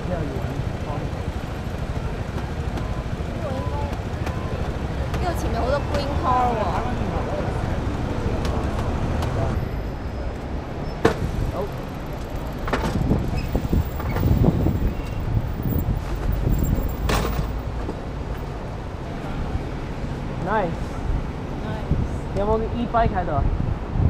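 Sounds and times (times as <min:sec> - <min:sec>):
road traffic rumble: 0:00.0 - 0:24.0.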